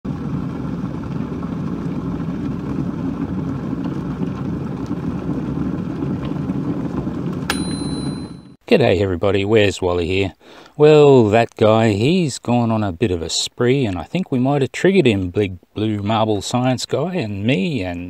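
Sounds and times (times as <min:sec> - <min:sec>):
sharp high ding: 0:07.5 - 0:08.6.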